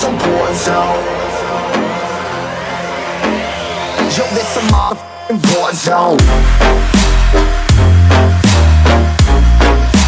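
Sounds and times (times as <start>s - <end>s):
synth lines gliding in pitch: 0.0s - 7.7s
deep bass: 0.0s - 10.0s
electronic dance music: 0.0s - 10.0s.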